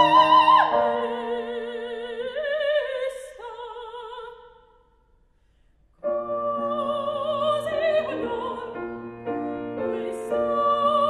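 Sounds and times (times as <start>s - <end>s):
female operatic singing with vibrato: 0.0s - 4.8s, 6.0s - 9.0s, 9.7s - 11.0s.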